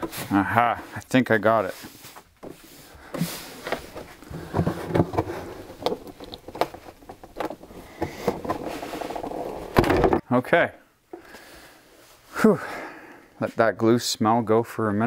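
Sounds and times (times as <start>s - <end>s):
plastic lid cracking and creaking: 3.6s - 10.2s.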